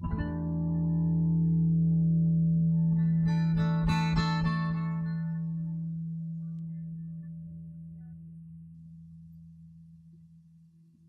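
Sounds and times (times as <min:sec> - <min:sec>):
soft ambient guitar note ringing: 0:00.0 - 0:10.4.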